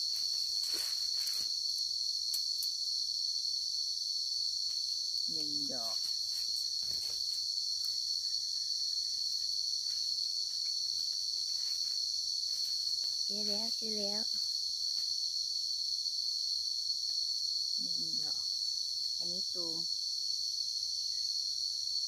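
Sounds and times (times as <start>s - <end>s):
footsteps in dry leaves: 0.0s - 1.6s
forest insects droning: 0.0s - 22.0s.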